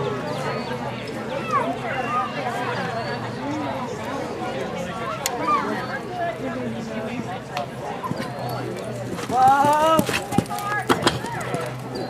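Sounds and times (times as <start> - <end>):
background talk: 0.0 - 12.0
hooves thudding: 8.0 - 12.0
horse hoofbeats on dirt: 8.0 - 12.0.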